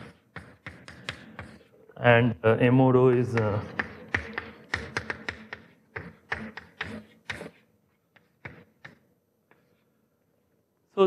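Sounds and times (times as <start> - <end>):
chalk tapping on chalkboard: 0.0 - 1.7, 3.1 - 9.8.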